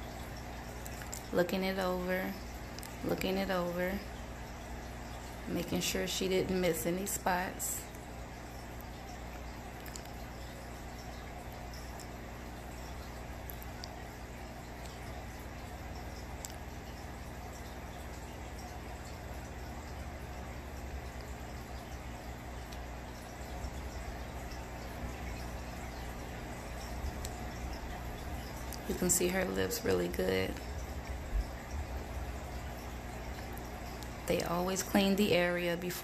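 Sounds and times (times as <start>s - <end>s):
aquarium equipment hum: 0.0s - 36.0s.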